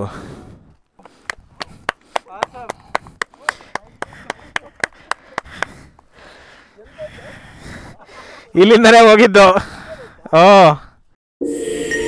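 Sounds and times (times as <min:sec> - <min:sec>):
rhythmic hand clapping: 0:01.2 - 0:05.8.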